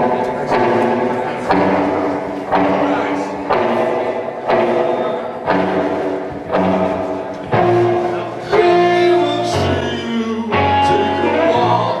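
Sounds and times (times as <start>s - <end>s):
live rock band playing chords: 0.0s - 12.0s.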